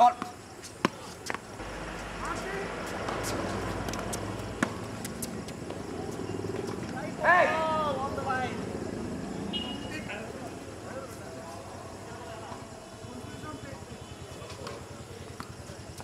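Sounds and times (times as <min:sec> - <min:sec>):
steady background rumble: 0:01.5 - 0:09.3.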